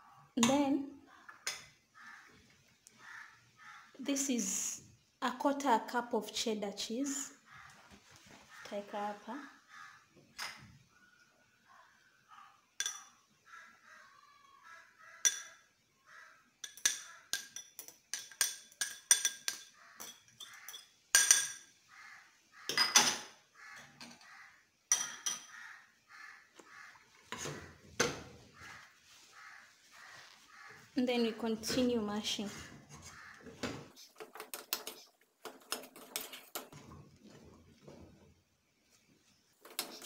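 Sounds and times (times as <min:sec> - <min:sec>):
utensils knocking in metal pot: 0:12.8 - 0:13.1, 0:16.6 - 0:21.7
metal spoon clinking on glass bowl: 0:12.8 - 0:13.2, 0:16.6 - 0:21.7.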